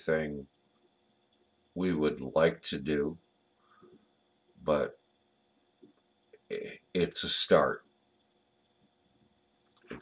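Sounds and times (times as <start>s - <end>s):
man speaking: 0.0s - 0.5s, 1.8s - 3.2s, 4.6s - 5.0s, 6.5s - 7.8s.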